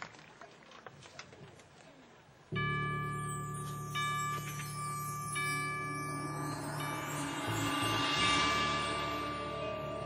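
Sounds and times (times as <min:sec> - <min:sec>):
ringing bell tone: 0:02.6 - 0:10.0.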